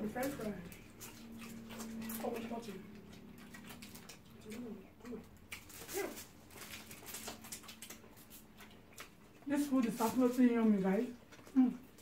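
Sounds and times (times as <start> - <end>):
faint chewing and mouth clicks: 0.0 - 12.0.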